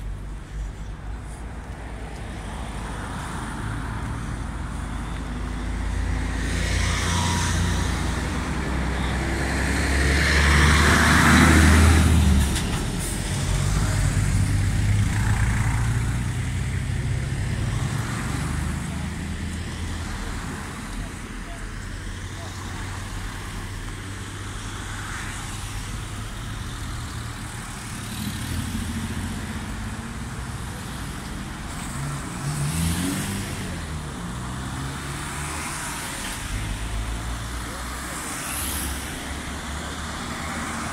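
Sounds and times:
cars driving past: 0.0 - 40.9
faint voices: 17.8 - 24.6.

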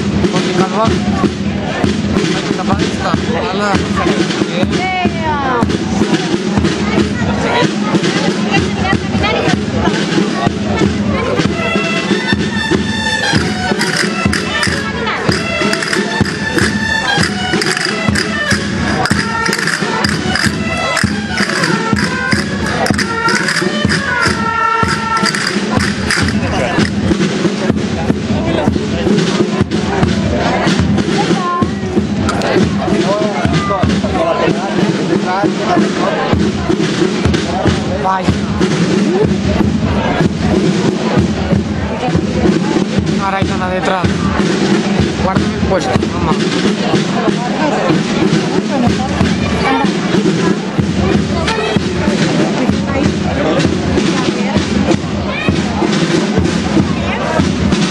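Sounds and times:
crowd voices: 0.0 - 57.9
fast percussive beat: 0.0 - 57.9
reedy wind instrument tune: 0.0 - 57.9.

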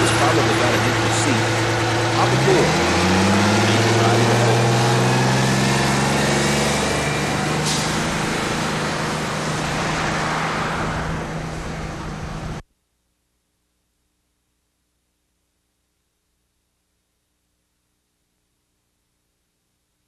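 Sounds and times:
bus diesel engine driving away: 0.0 - 12.6.

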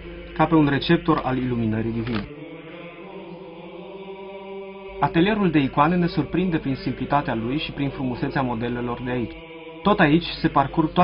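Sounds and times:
choral chant holding a chord: 0.0 - 11.0.

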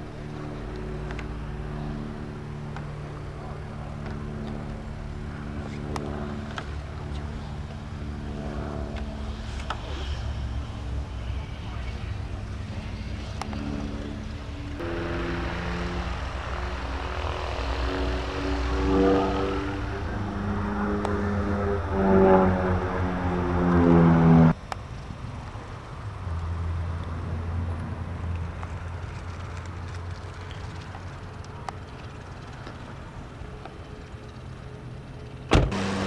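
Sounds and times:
biplane engine flying overhead: 0.0 - 36.0
low aircraft engine drone: 0.0 - 36.0.

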